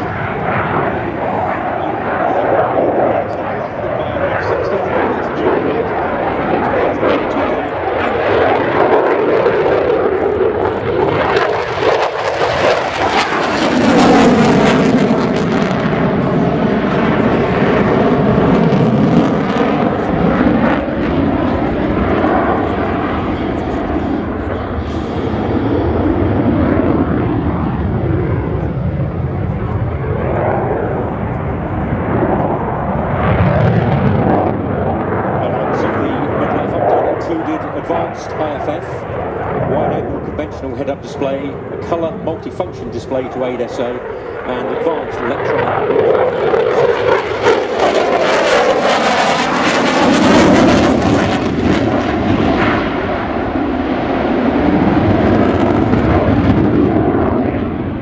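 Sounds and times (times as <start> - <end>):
loud jet roar: 0.0 - 58.0.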